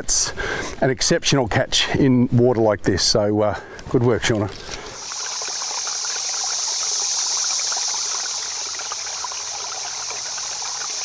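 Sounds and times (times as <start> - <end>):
stream water trickling: 4.0 - 11.0.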